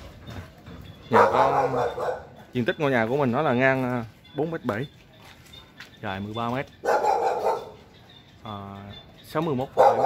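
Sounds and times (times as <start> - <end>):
dog barking: 1.1 - 2.4, 6.8 - 7.9, 9.7 - 10.0.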